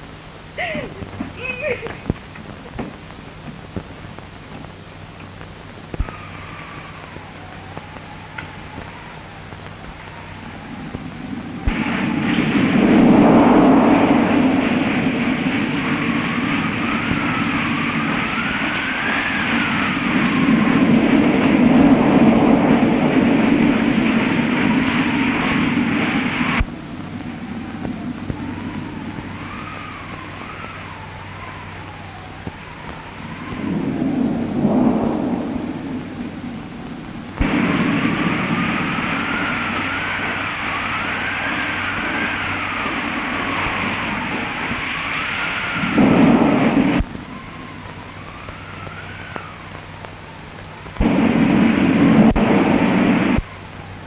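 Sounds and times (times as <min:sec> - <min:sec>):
storm wind howling: 0:00.0 - 0:54.0.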